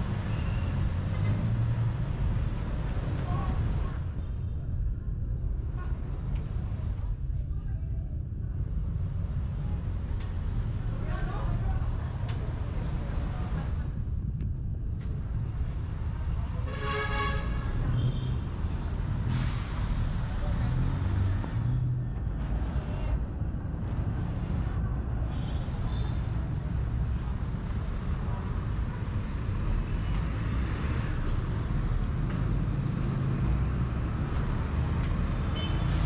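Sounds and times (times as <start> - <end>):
rumble of passing vehicles: 0.0 - 36.0.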